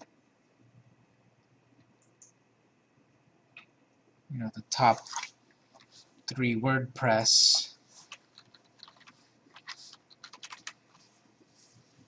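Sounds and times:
computer keyboard typing: 8.0 - 11.1.

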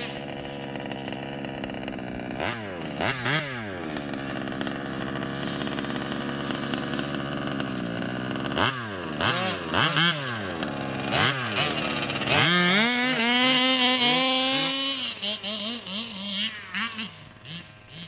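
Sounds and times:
small two-stroke engine revving: 0.0 - 18.0.

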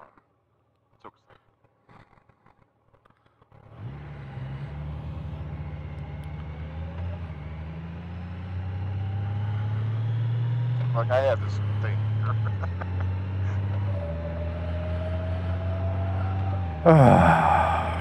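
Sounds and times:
motorcycle engine pulling away: 3.6 - 10.9, 11.6 - 17.8.

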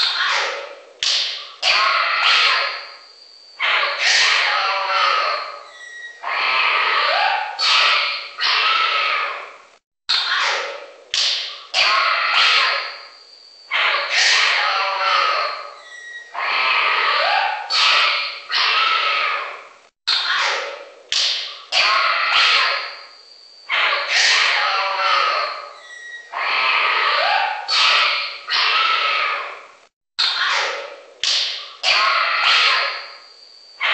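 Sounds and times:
exotic animal calls and squawks: 0.0 - 33.9.

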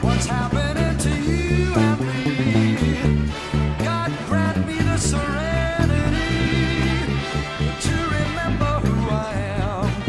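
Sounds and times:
band playing sliding tones: 0.0 - 10.0
electric bass playing: 0.0 - 10.0.

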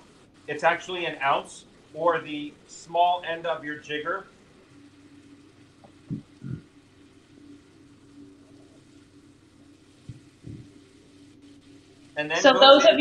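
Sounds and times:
faint steady low hum: 0.0 - 13.0
soft low thumps: 5.0 - 7.4, 8.4 - 11.9.

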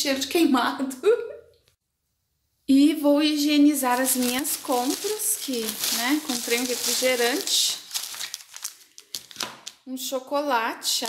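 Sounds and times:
plastic bag rustling: 3.7 - 9.8.

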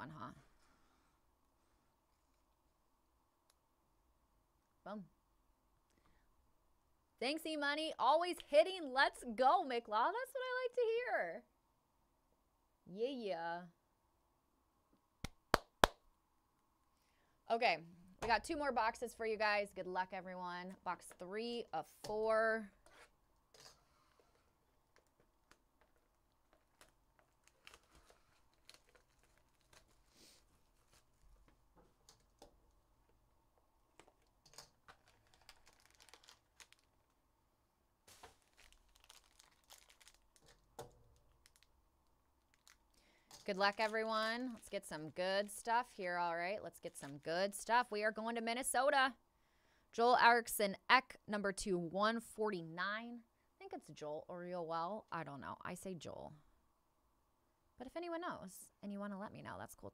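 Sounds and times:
hand claps: 15.2 - 16.0
plastic wrapping crinkling and tearing: 24.8 - 32.5, 33.9 - 37.2, 38.0 - 41.8, 42.4 - 45.7.

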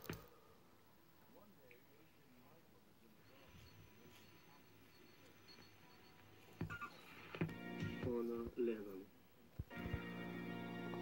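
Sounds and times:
faint room hum: 0.0 - 11.0
vinyl record music over speakers: 7.0 - 8.9, 9.6 - 11.0.

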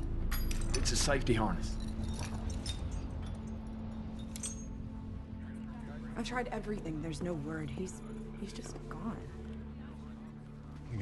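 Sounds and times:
harness buckles clinking: 0.0 - 5.0.

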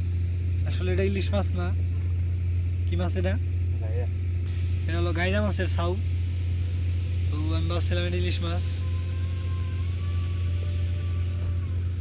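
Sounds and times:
low engine drone: 0.0 - 12.0.

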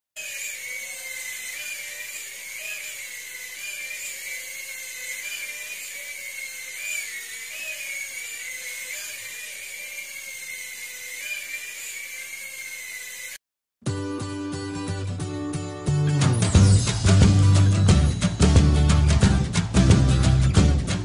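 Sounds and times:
drone propellers whining: 0.2 - 13.4.

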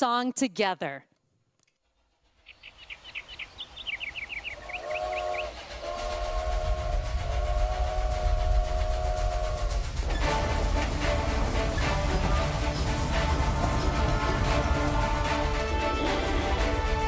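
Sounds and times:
low train rumble: 2.0 - 17.0
birds chirping: 2.4 - 6.2
steam whistle blasts: 4.6 - 17.0.

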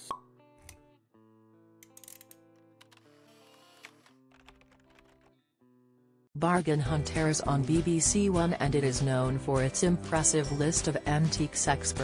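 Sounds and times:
soft background music: 6.4 - 12.0.

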